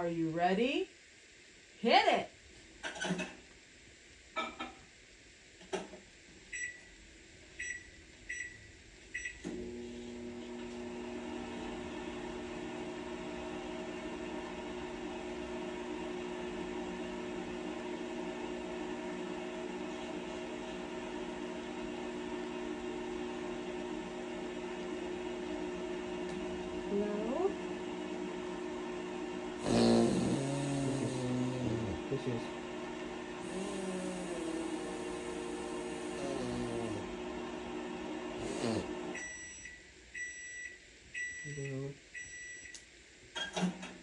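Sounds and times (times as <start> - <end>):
microwave oven humming: 0.0 - 44.0.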